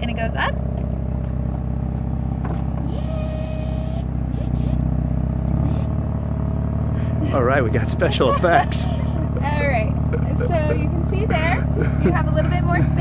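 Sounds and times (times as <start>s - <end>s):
low mechanical rumble: 0.0s - 13.0s.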